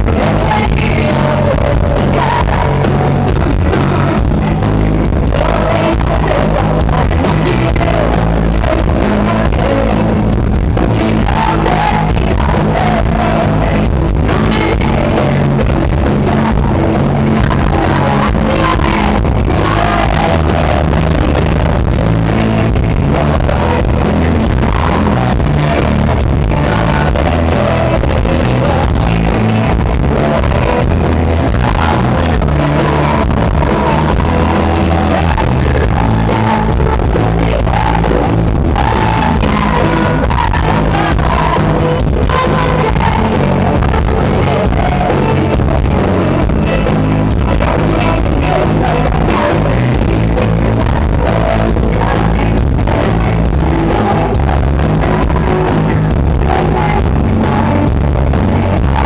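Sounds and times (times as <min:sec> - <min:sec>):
drums: 0:00.0 - 0:59.0
electric guitar: 0:00.0 - 0:59.0
live pop-rock band playing: 0:00.0 - 0:59.0
person singing: 0:00.0 - 0:59.0.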